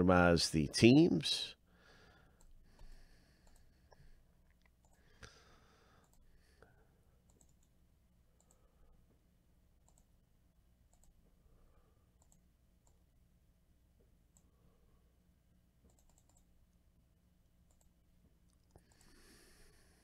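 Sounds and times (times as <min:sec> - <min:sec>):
computer mouse clicks: 0:02.4 - 0:05.0, 0:06.0 - 0:06.3, 0:07.2 - 0:07.8, 0:08.4 - 0:08.6, 0:09.8 - 0:10.1, 0:10.9 - 0:11.2, 0:12.2 - 0:13.0, 0:15.8 - 0:16.5, 0:17.7 - 0:19.2.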